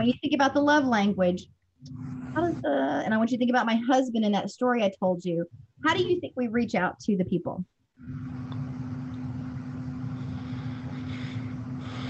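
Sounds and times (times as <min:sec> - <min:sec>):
low electrical hum with hiss: 0:00.0 - 0:07.4, 0:08.0 - 0:12.0.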